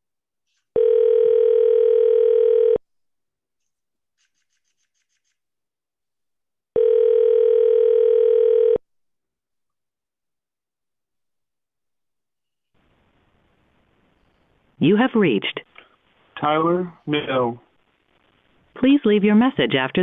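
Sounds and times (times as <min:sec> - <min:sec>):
telephone ringback tone: 0:00.8 - 0:02.8, 0:06.8 - 0:08.8.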